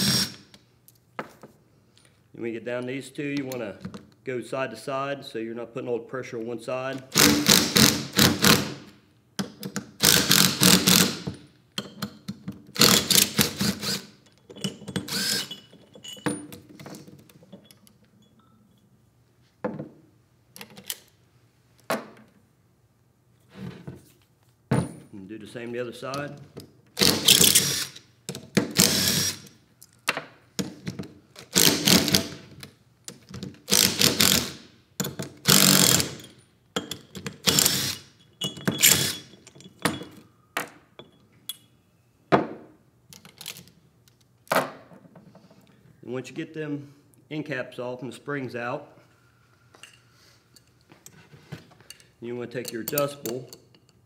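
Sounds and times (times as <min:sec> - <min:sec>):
impact driver bursts: 0:00.0 - 0:00.5, 0:07.1 - 0:08.9, 0:10.0 - 0:11.3, 0:12.8 - 0:14.2, 0:15.0 - 0:15.5, 0:27.0 - 0:29.5, 0:31.4 - 0:32.4, 0:33.7 - 0:34.7, 0:35.4 - 0:36.2, 0:37.4 - 0:38.1, 0:38.8 - 0:39.3.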